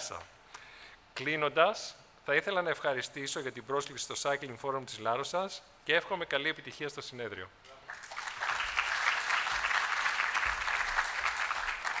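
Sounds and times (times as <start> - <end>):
audience applauding: 7.9 - 12.0.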